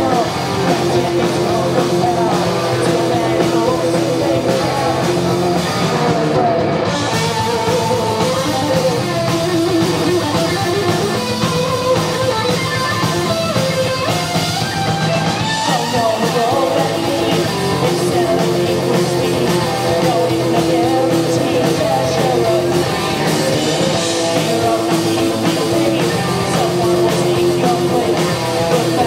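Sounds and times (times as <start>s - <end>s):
distorted electric guitar: 0.0s - 29.0s
drum kit: 0.0s - 29.0s
sung vocals: 0.0s - 29.0s.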